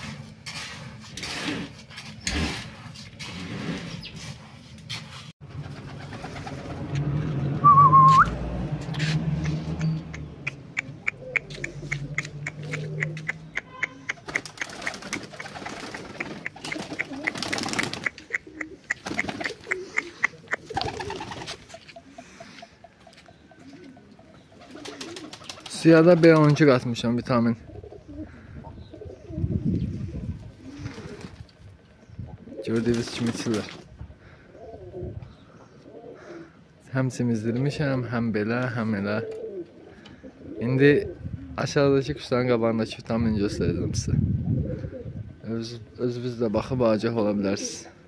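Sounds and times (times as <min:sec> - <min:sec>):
wavering whistle-like call: 0:07.6 - 0:08.3
pigeons cooing: 0:10.2 - 0:25.7, 0:27.6 - 0:36.8, 0:39.0 - 0:41.7, 0:44.4 - 0:46.0.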